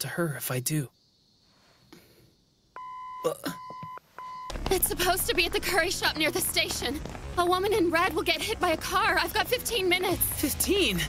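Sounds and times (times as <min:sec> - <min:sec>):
electronic beep tone: 0:02.8 - 0:04.6.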